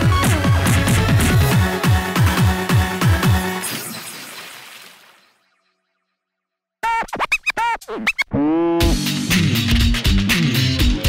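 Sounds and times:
turntable scratching: 6.8s - 9.0s.

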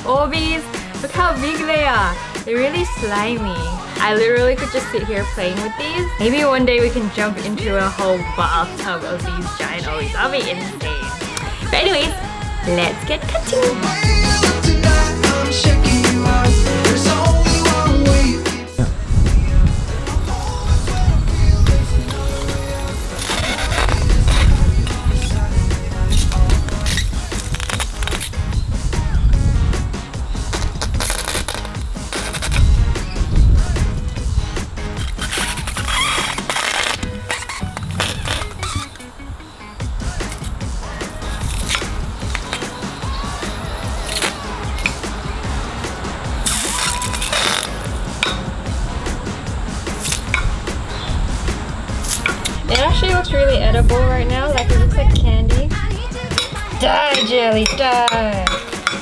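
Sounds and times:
background music: 0.0s - 59.0s
hot knife sizzling through gel beads: 46.4s - 47.9s.

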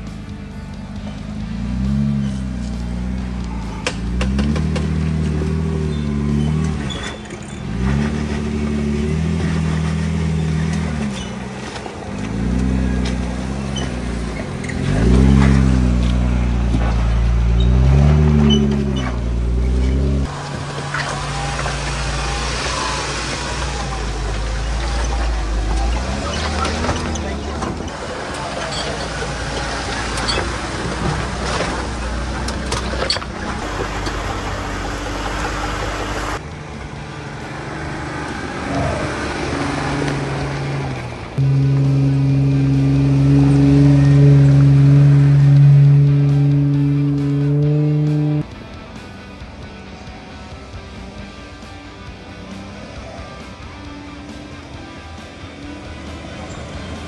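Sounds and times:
engine revving: 0.0s - 48.8s.

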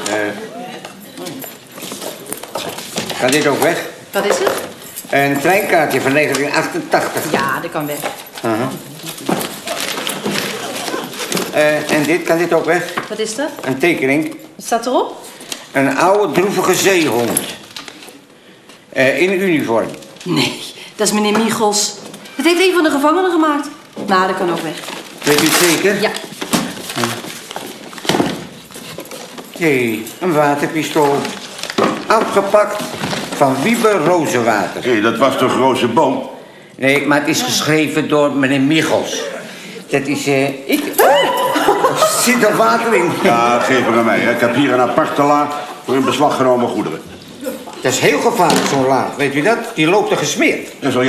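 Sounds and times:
person speaking: 0.0s - 14.5s, 29.5s - 51.0s
small objects knocking and clinking: 1.4s - 10.5s
paper rustling: 4.7s - 13.4s, 23.8s - 34.8s.

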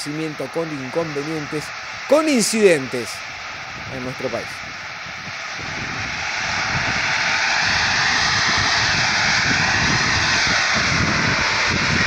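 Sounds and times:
gas blowing out of well: 4.5s - 12.0s.

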